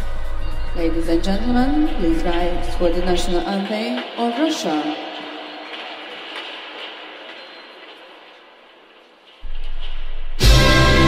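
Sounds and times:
hubbub of hall and crowd: 0:03.9 - 0:09.3.

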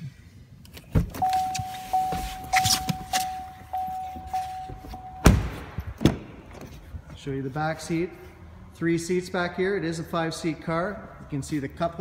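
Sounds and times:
car warning chime dinging: 0:01.2 - 0:05.6
car door slamming: 0:04.1 - 0:06.6.

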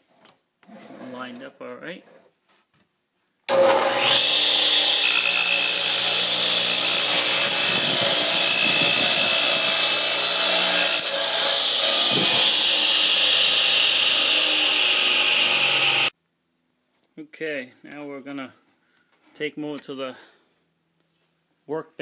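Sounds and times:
radial arm saw cutting wood: 0:03.5 - 0:16.1.

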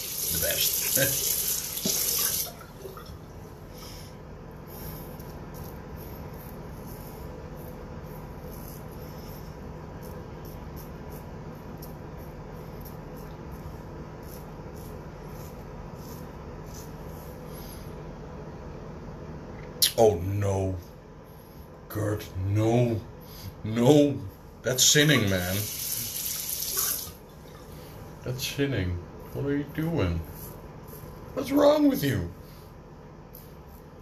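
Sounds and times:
low background hum: 0:00.0 - 0:34.0.

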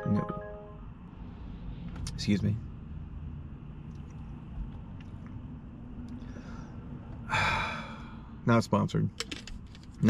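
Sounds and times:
phone app chime: 0:00.0 - 0:00.8
low hum in car cabin: 0:00.0 - 0:10.0.

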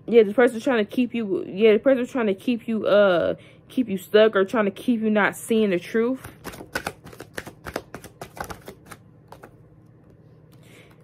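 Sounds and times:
cards being shuffled: 0:06.2 - 0:09.6.

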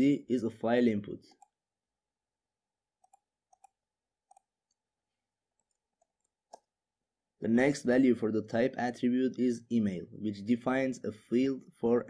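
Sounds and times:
computer mouse clicks: 0:03.0 - 0:04.8, 0:05.6 - 0:06.7.

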